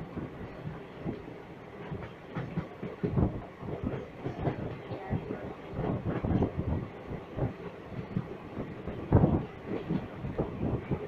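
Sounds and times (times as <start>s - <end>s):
train wheels clattering over rail joints: 1.8s - 4.9s.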